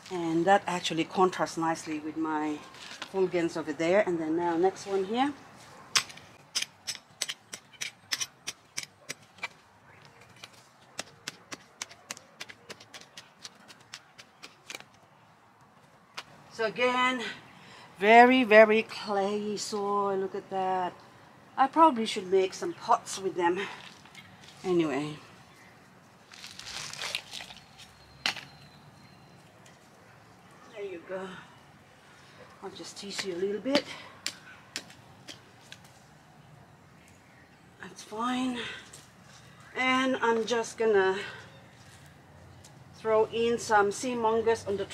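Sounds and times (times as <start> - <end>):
metal tool chopping into clay soil: 6.0 - 9.6
rustling and crinkling: 23.6 - 25.0, 25.6 - 28.6, 34.3 - 36.2.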